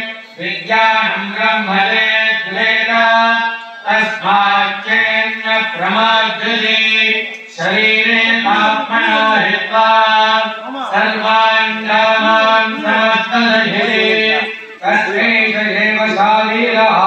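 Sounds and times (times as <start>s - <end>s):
priests chanting mantras: 0.0s - 17.0s.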